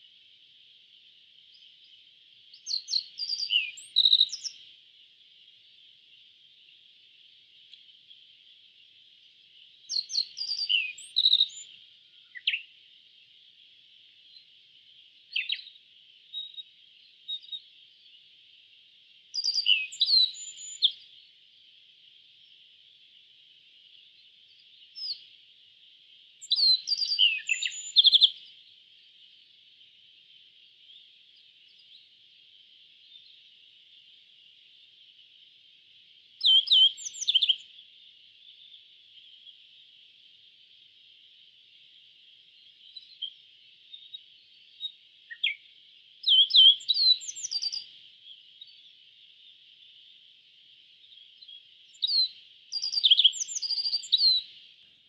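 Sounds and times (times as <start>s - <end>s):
faint steady hiss: 0.0s - 55.0s.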